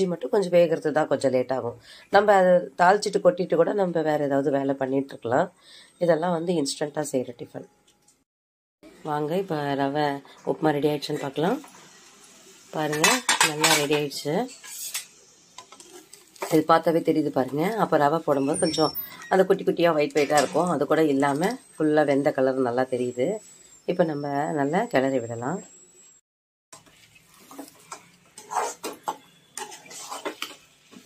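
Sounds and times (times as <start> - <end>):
spoon scraping and knocking pan: 12.9 - 16.7, 26.8 - 31.0.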